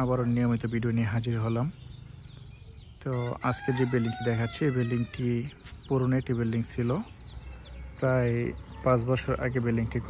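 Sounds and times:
man talking: 0.0s - 1.8s, 3.0s - 7.2s, 8.0s - 10.0s
rooster crowing: 3.2s - 5.2s.

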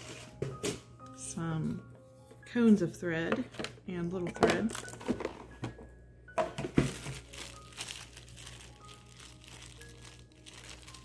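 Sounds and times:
plastic bag crinkling: 6.8s - 11.0s.

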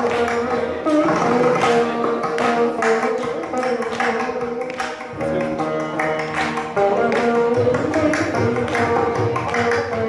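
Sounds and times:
mridangam strokes: 0.0s - 10.0s
plucked veena notes: 0.0s - 10.0s.

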